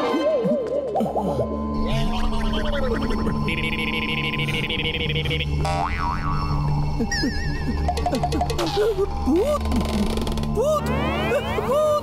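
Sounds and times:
comic film score: 0:00.0 - 0:12.0.

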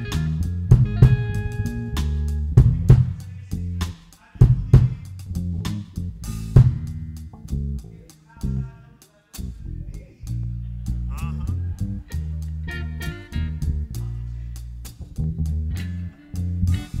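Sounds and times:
electric guitar: 0:00.0 - 0:02.5
live blues band: 0:00.0 - 0:04.0
electric bass: 0:00.0 - 0:08.8, 0:09.4 - 0:17.0
drum kit: 0:00.0 - 0:09.5, 0:16.4 - 0:17.0.

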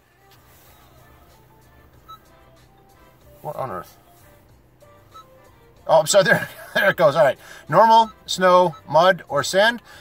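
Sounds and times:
faint soft music notes: 0:00.0 - 0:10.0
low steady hum: 0:00.0 - 0:10.0.

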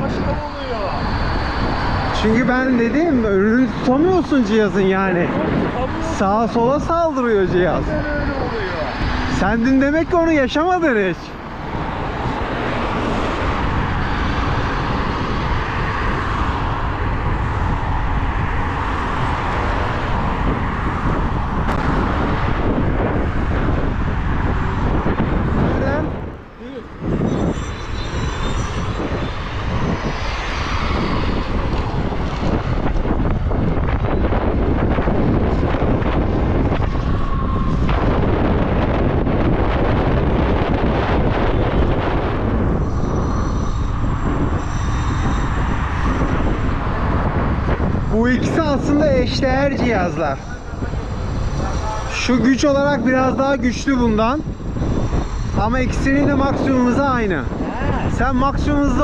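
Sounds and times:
tyre road noise: 0:00.0 - 0:59.0
wind buffeting microphone: 0:00.0 - 0:59.0.

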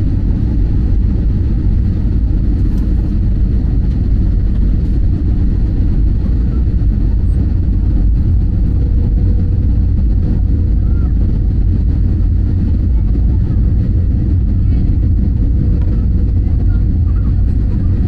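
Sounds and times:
jet engine and airflow rumble: 0:00.0 - 0:18.0.

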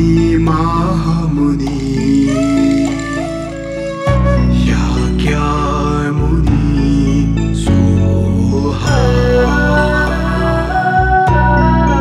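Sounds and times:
slow soft music with drone: 0:00.0 - 0:12.0.

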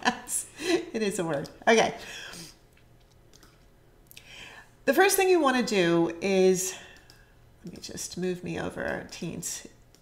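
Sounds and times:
woman speaking: 0:00.0 - 0:02.5, 0:04.8 - 0:06.9, 0:07.6 - 0:09.8
soft breath: 0:04.2 - 0:04.8
faint clicks: 0:06.9 - 0:07.8.

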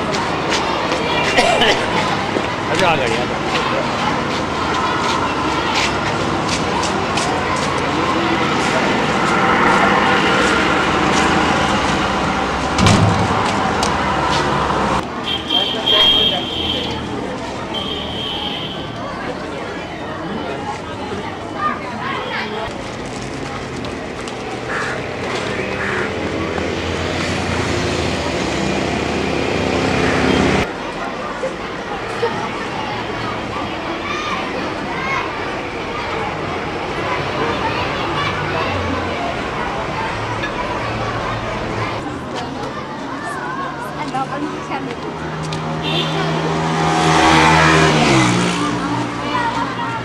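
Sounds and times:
motor vehicle passing by: 0:01.9 - 0:15.3, 0:23.1 - 0:30.7, 0:35.8 - 0:50.0.

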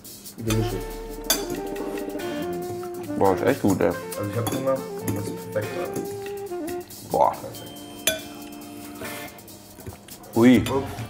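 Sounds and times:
background music with held notes: 0:00.4 - 0:11.0
cutlery clinking on a plate: 0:08.1 - 0:08.4.

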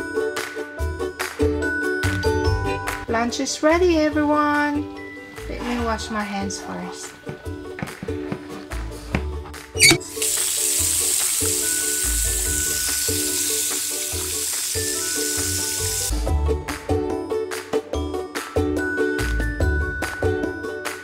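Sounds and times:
background music: 0:00.0 - 0:21.0
tap water running: 0:09.8 - 0:16.1.

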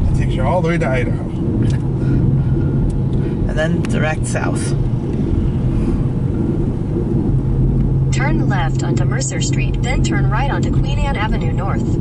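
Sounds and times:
car driving rumble: 0:00.0 - 0:12.0
steady low hum: 0:00.0 - 0:12.0.

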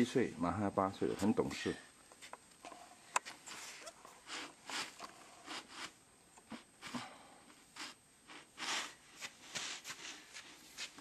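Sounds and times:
short crunching and rustling: 0:07.8 - 0:11.0.

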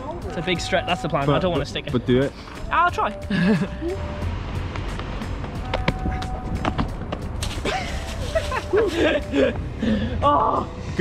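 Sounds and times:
running footsteps on pavement: 0:04.4 - 0:09.5.

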